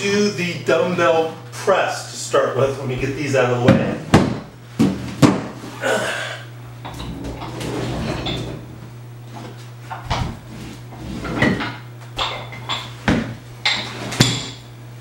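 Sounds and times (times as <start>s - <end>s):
metal weights clanking: 6.8s - 9.0s.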